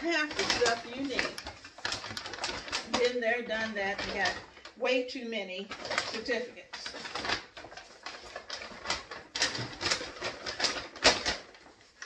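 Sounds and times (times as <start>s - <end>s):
paper bag rustling: 0.0s - 12.0s.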